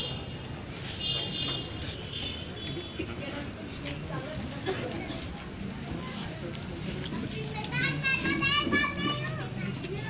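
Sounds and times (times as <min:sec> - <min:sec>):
indistinct background voices: 0:00.4 - 0:10.0.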